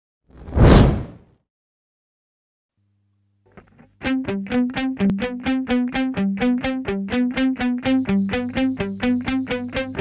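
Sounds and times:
whoosh sound effect: 0:00.4 - 0:01.2.

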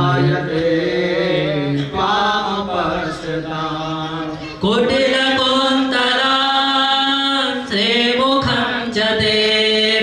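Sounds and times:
men chanting mantras: 0:00.0 - 0:10.0.

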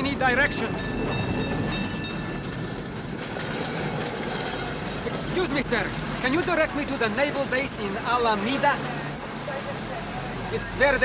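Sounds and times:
cable car rumbling on rails: 0:00.0 - 0:07.7.

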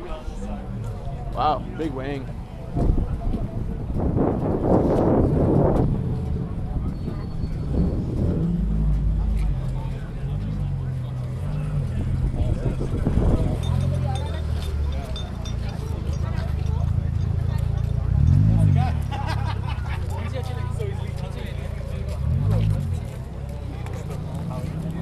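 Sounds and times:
car engine rumbling: 0:00.0 - 0:25.0
crowd chatter: 0:00.0 - 0:25.0.

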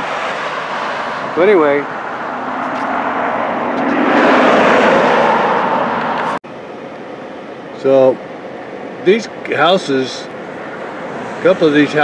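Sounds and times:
vehicle passing by: 0:00.0 - 0:06.4, 0:10.5 - 0:12.0
steady traffic noise: 0:00.0 - 0:12.0.

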